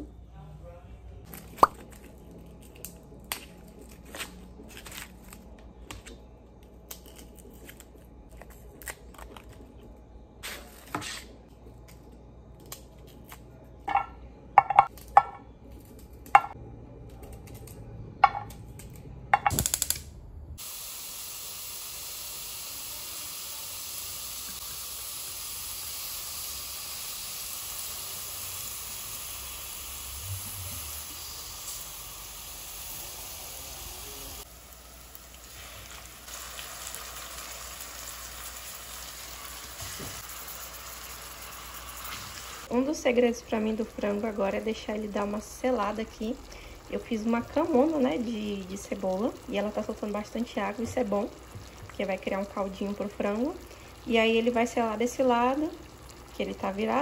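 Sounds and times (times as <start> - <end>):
onion sizzling in oil: 20.6 - 57.0.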